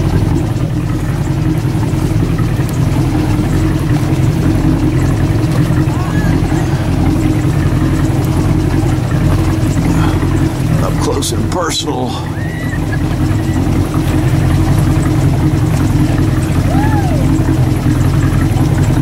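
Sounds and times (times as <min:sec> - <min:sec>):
boat motor humming: 0:00.0 - 0:19.0.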